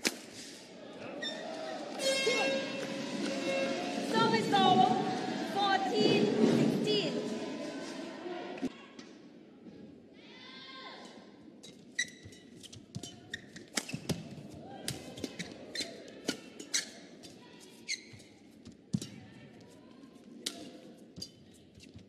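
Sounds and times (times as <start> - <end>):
shoes squeaking on court: 11.6 - 14.2, 15.3 - 18.3.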